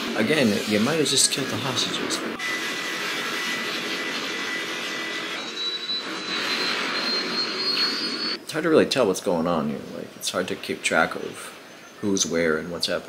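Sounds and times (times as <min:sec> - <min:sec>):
fire burning: 0:02.0 - 0:08.5.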